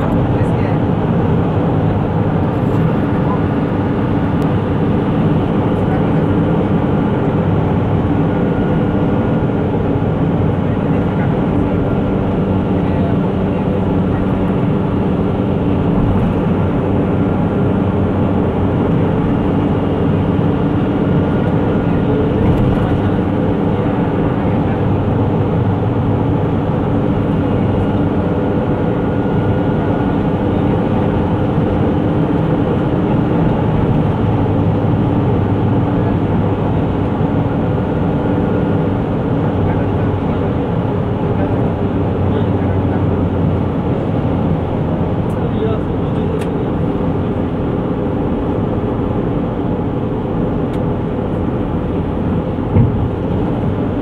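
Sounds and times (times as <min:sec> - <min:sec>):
road noise: 0:00.0 - 0:54.0
vehicle engine drone: 0:00.0 - 0:54.0.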